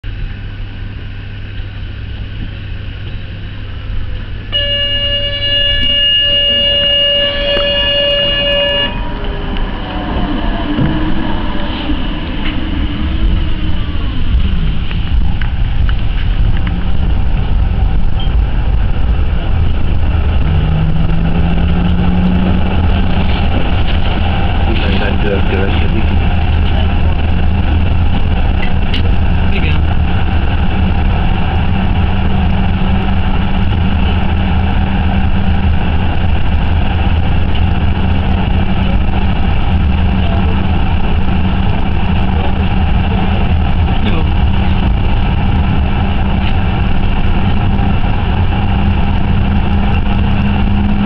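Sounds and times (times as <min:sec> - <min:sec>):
low motor whine: 0:00.0 - 0:51.0
tram rail and wheel rumble: 0:00.0 - 0:51.0
held warning tone: 0:04.4 - 0:14.8.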